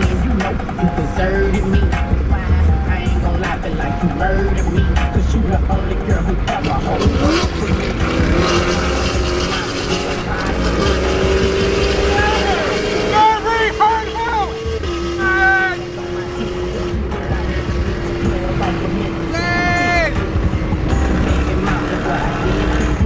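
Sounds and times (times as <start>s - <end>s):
car road noise: 0.0s - 23.0s
music with beat and singing: 0.0s - 23.0s.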